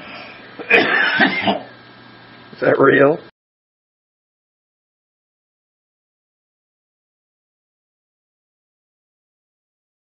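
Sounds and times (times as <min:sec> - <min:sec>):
man clearing throat: 0:00.6 - 0:01.8.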